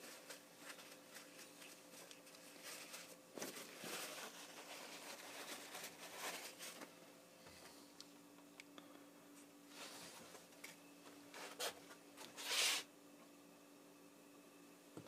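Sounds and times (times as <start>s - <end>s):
rustling and handling: 0.0s - 7.9s, 9.3s - 12.9s
faint steady hum: 0.0s - 15.0s.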